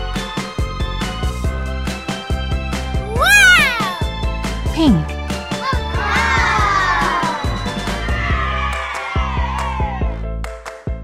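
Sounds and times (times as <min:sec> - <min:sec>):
cartoon voice call: 0:03.0 - 0:04.1.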